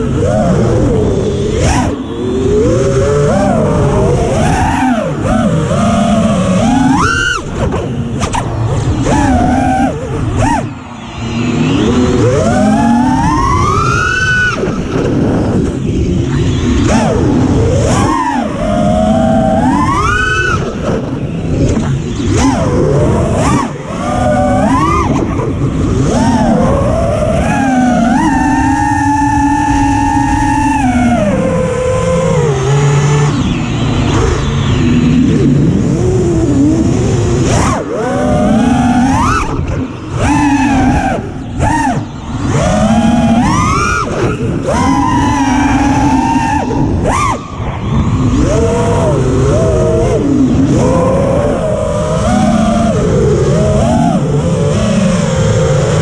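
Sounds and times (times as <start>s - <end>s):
drone motors whining: 0.0s - 56.0s
wind rushing: 38.6s - 53.9s.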